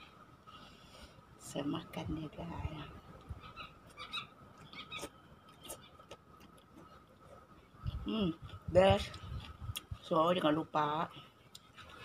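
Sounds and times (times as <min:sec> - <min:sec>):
person chewing: 0:04.6 - 0:10.0.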